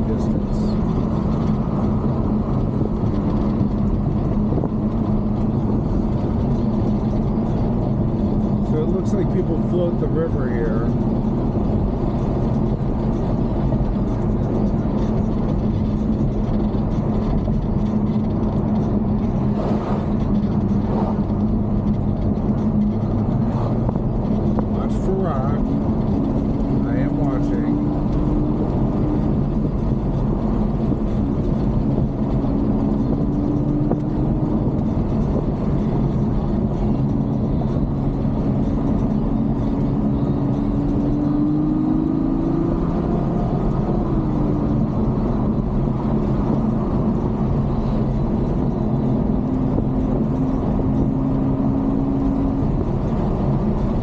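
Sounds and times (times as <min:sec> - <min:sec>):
car engine drone: 0:00.0 - 0:54.0
road and tyre noise: 0:00.0 - 0:54.0.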